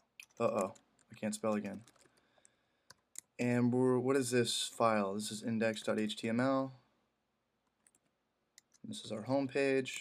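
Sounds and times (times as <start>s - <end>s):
person speaking: 0.2s - 2.0s, 3.2s - 6.8s, 8.6s - 10.0s
computer keyboard keystrokes: 0.2s - 2.2s.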